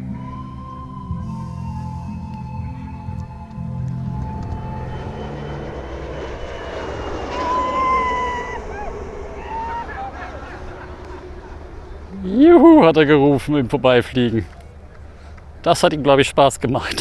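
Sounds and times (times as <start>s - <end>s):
glider swooshing past: 3.8s - 13.7s.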